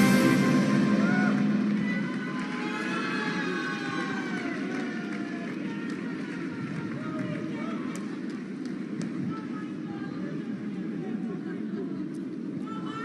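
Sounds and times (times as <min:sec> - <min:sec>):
audience cheering and applauding: 0:00.0 - 0:07.4.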